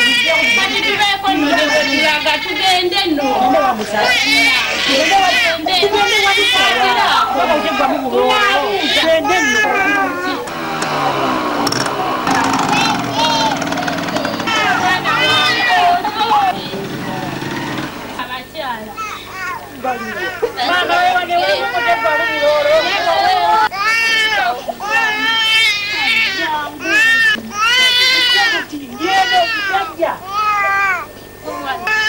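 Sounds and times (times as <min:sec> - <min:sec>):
people's voices: 0:00.0 - 0:32.0
small motorcycle engine running: 0:10.4 - 0:18.4.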